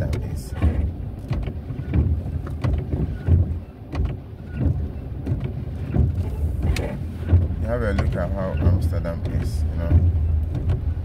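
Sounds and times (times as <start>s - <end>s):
engine and tyre rumble: 0.0s - 11.0s.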